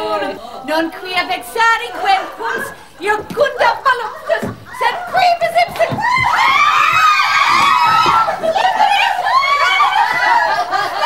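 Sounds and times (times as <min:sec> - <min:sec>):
women laughing and talking: 0:00.0 - 0:06.8, 0:08.0 - 0:11.0.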